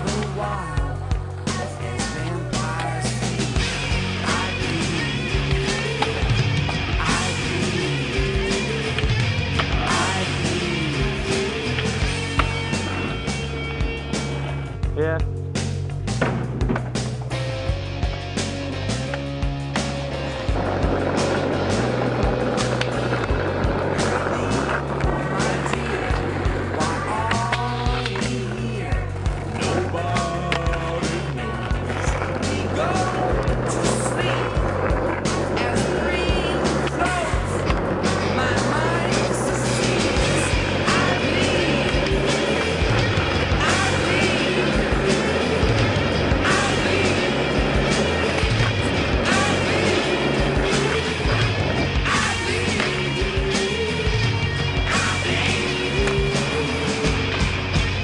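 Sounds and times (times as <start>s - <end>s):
skateboard rolling on asphalt: 0.0s - 14.8s, 16.4s - 58.0s
music with bass line and singing: 0.0s - 58.0s.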